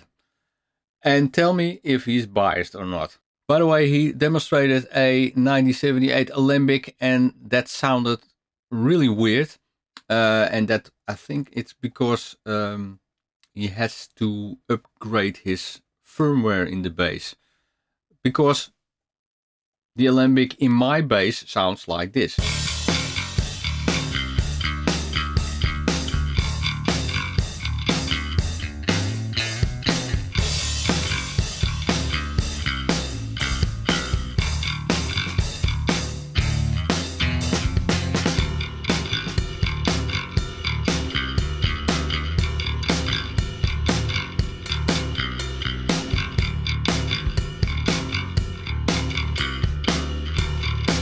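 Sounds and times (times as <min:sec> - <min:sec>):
backing track with steady beat: 0:22.4 - 0:51.0
picked bass guitar notes: 0:22.4 - 0:51.0.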